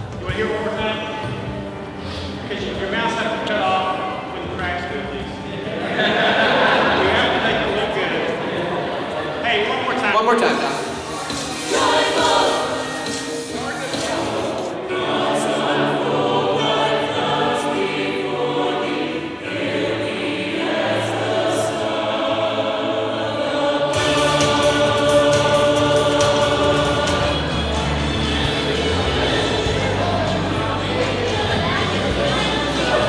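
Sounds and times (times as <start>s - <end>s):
choir singing in harmony: 1.9s - 33.0s.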